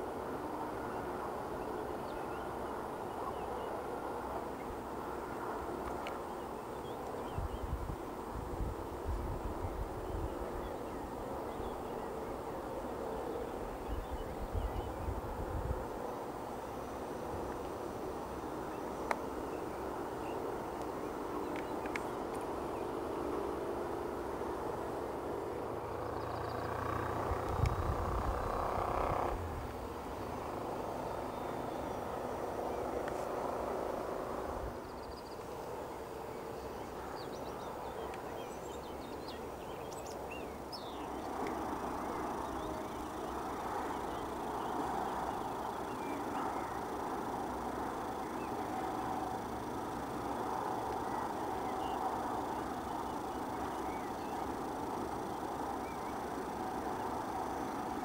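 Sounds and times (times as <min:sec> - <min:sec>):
electric motor and propeller droning: 0:00.0 - 0:58.0.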